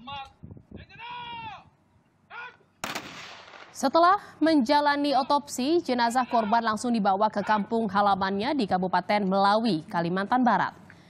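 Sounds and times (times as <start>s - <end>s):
high drawn-out human call: 0.8s - 1.7s, 2.3s - 2.7s, 5.1s - 7.7s.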